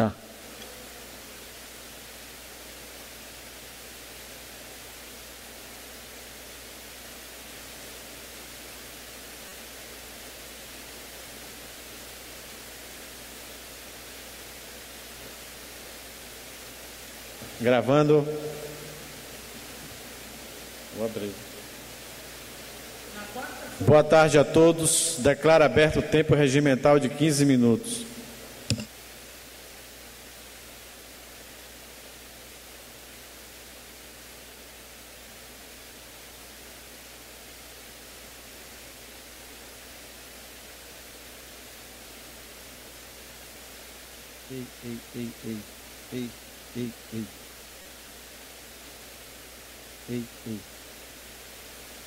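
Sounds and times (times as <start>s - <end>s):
man speaking loudly: 0.0s - 0.2s, 17.4s - 19.1s, 20.9s - 21.5s, 23.8s - 28.4s, 44.5s - 47.3s, 50.1s - 50.7s
background hiss: 0.0s - 52.0s
faint voice: 44.5s - 47.4s, 50.1s - 50.7s.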